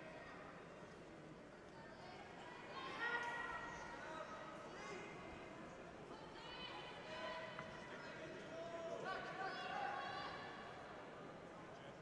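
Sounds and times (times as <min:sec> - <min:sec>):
sports hall murmur: 0:00.0 - 0:12.0.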